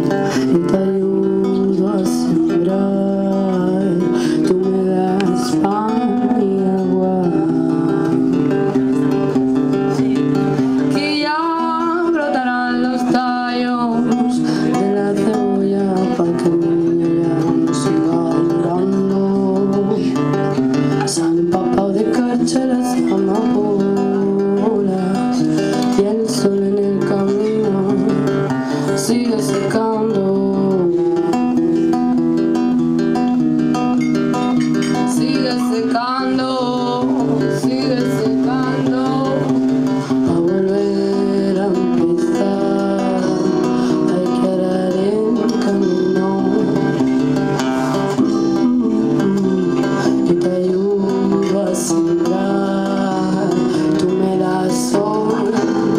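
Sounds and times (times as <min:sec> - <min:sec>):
acoustic and electric guitars: 0:00.0 - 0:55.9
person singing: 0:00.0 - 0:55.9.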